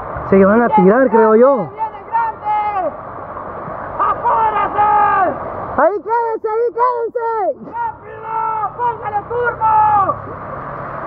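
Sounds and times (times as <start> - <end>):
heavy rain: 0.0 - 6.0
river rushing: 0.0 - 11.0
people calling out: 0.6 - 3.0, 3.8 - 10.3.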